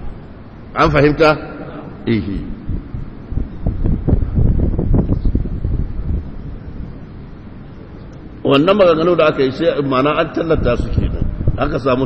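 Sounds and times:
low rumble and buffeting on microphone: 0:00.0 - 0:12.0.

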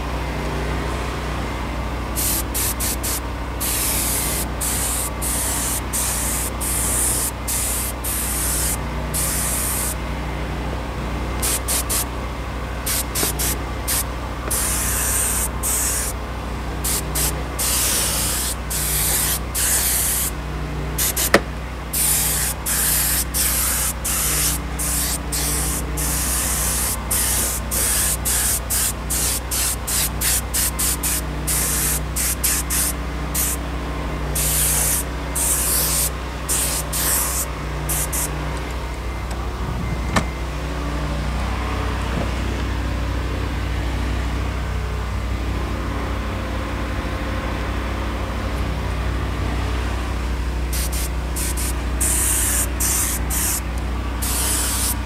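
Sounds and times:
steady low hum: 0:00.0 - 0:40.6, 0:48.5 - 0:55.0
spray gun hissing bursts: 0:02.2 - 0:10.0, 0:11.4 - 0:12.1, 0:12.8 - 0:16.2, 0:16.8 - 0:20.4, 0:21.0 - 0:33.6, 0:34.4 - 0:38.3, 0:50.7 - 0:55.0.

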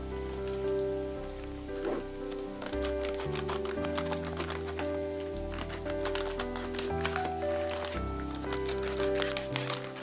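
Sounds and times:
soft rain-like hiss: 0:00.0 - 0:02.8
instrumental music with held notes: 0:00.0 - 0:10.0.

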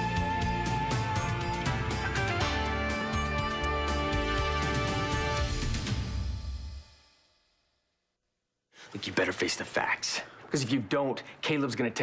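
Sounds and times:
television theme music: 0:00.0 - 0:07.0
person speaking: 0:08.8 - 0:12.0.

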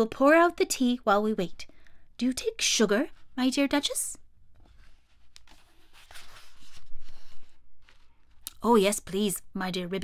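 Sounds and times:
book page turning: 0:04.5 - 0:08.5.

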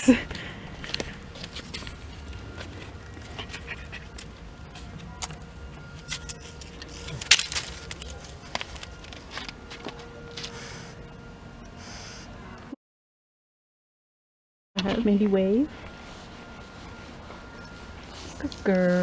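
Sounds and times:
low steady rumble: 0:00.0 - 0:10.4.

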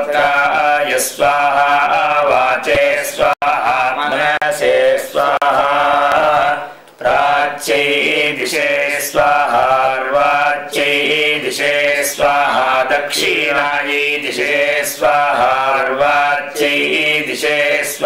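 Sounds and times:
man chanting mantras: 0:00.0 - 0:06.8.

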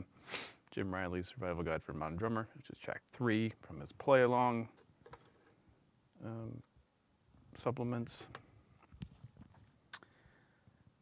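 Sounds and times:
faint handling noise: 0:04.6 - 0:05.7.

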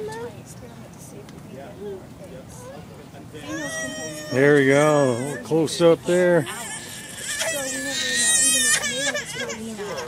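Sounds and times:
young child crying: 0:03.4 - 0:05.5.

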